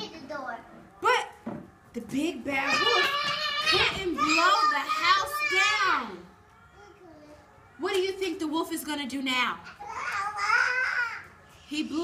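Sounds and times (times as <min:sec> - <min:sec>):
young children calling out: 0:02.7 - 0:07.7, 0:09.7 - 0:11.4.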